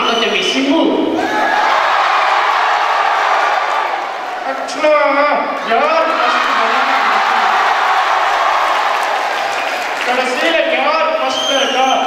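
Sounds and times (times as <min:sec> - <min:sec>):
audience applauding: 0:01.4 - 0:04.7, 0:05.6 - 0:11.0.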